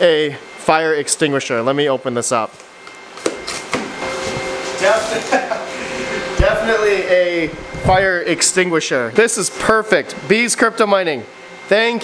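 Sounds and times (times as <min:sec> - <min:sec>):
machine hum with pitched tones: 0:00.0 - 0:12.0
man laughing: 0:05.0 - 0:06.3.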